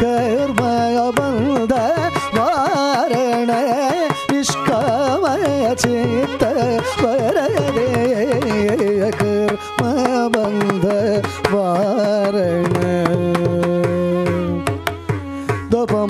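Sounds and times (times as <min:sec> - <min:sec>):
hand drum strokes: 0:00.0 - 0:16.0
man singing with ornamentation: 0:00.0 - 0:16.0
violin: 0:00.0 - 0:16.0.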